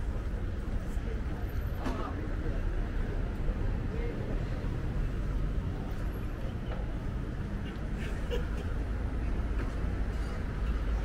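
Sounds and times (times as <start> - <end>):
low rumble of road traffic: 0.0 - 11.0
passers-by talking faintly: 0.0 - 11.0.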